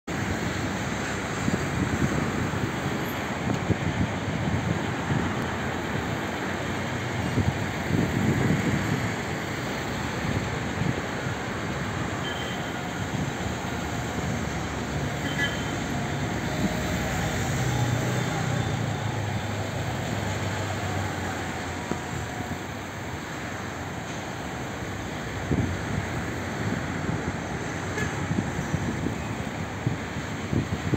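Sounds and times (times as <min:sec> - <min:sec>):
street traffic noise: 0:00.0 - 0:30.9.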